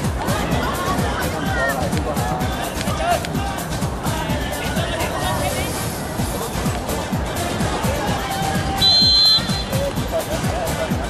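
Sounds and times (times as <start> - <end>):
music with a steady beat: 0.0 - 11.0
referee's whistle blast: 8.8 - 9.8.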